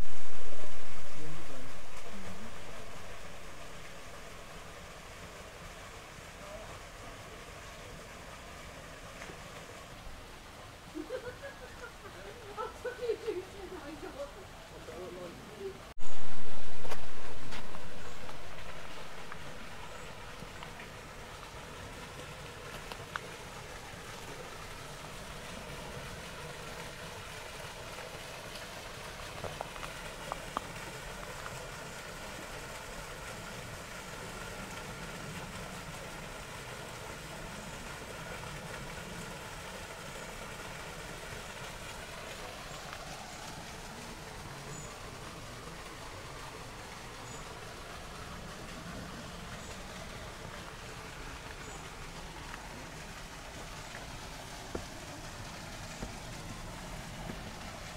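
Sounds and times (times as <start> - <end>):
steady low rumble: 0.0 - 11.7.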